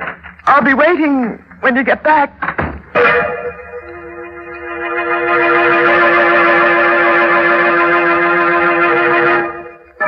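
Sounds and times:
sustained organ chord: 0:02.9 - 0:10.0.

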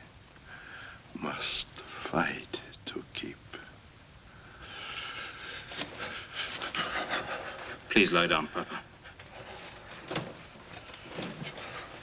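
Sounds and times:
man whispering: 0:01.0 - 0:03.8.

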